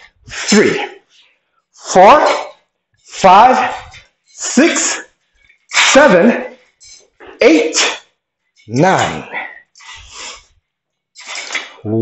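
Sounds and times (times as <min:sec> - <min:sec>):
sharp hissing breaths: 0:05.4 - 0:07.2, 0:09.2 - 0:10.6, 0:11.2 - 0:11.8.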